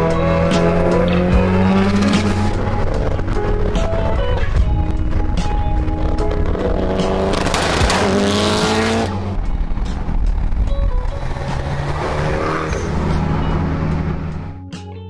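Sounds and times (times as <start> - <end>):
turbocharged engine accelerating: 0.0 - 14.6
background music: 0.0 - 15.0.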